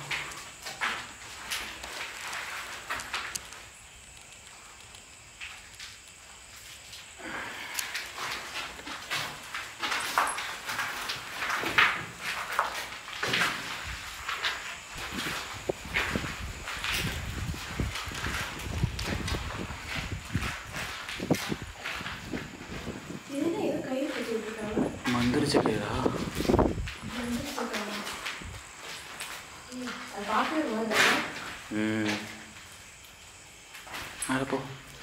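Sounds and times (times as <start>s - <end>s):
footsteps and shuffling: 7.9s - 33.1s.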